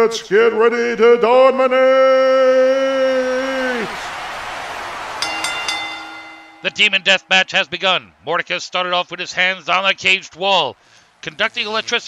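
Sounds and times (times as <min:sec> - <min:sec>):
boxing ring bell ringing: 0:05.2 - 0:07.8.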